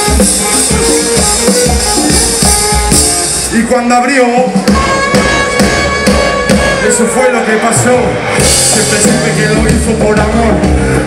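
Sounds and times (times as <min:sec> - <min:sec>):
live band playing hip hop: 0:00.0 - 0:11.0.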